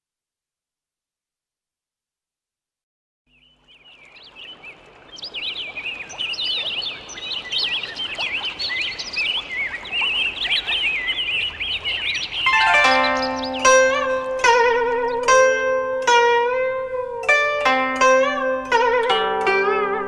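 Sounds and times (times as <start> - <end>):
small birds chirping: 3.3 - 19.8
zither plucking notes: 12.4 - 20.0.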